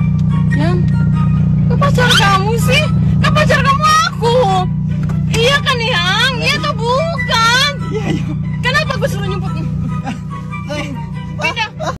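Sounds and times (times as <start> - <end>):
background music: 0.0 - 12.0
steady low hum: 0.0 - 12.0
people talking: 0.6 - 1.0, 1.7 - 4.7, 5.3 - 7.8, 8.6 - 9.7, 10.7 - 12.0.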